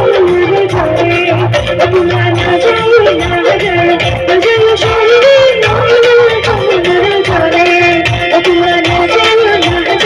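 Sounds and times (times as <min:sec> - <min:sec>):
keyboard: 0:00.0 - 0:10.0
live band playing: 0:00.0 - 0:10.0
steady drum beat: 0:00.0 - 0:10.0
woman singing into microphone: 0:00.0 - 0:10.0.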